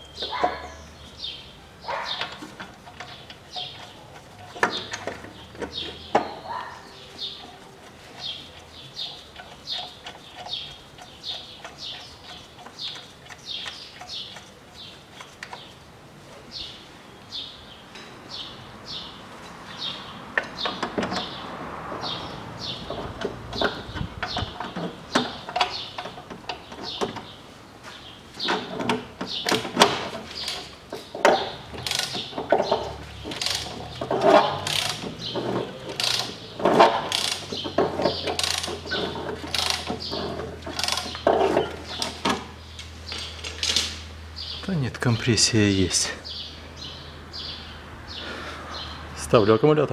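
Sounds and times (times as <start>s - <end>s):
small birds chirping: 0.0s - 49.6s
hand tools clicking and knocking: 2.1s - 6.4s, 7.4s - 15.7s, 20.4s - 21.4s, 22.8s - 27.3s, 28.4s - 44.0s.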